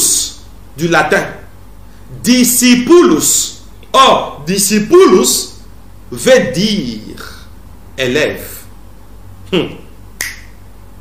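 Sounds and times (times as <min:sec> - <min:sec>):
sharp click: 0:10.2 - 0:10.6.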